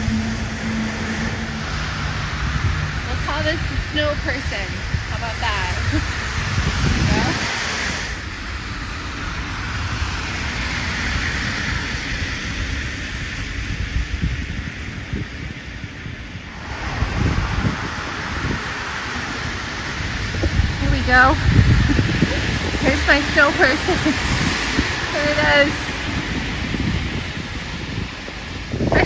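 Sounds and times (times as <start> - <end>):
street traffic hiss: 0.0 - 29.0
wind buffeting microphone: 0.0 - 29.0.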